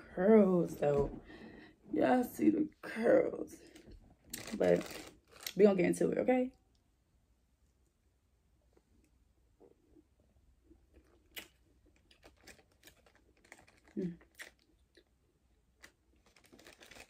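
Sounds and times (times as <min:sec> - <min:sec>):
plastic bag crinkling: 0:04.3 - 0:05.6, 0:11.0 - 0:15.1, 0:15.7 - 0:17.0
faint chewing: 0:10.8 - 0:15.1.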